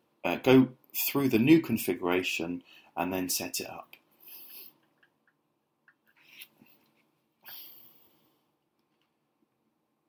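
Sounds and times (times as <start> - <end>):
soft breath through nose: 4.2 - 4.8.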